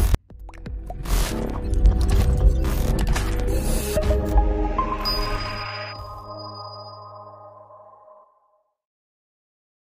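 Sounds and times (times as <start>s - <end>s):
high pinging tone: 4.8s - 8.2s
jingle chord ringing: 4.8s - 8.2s.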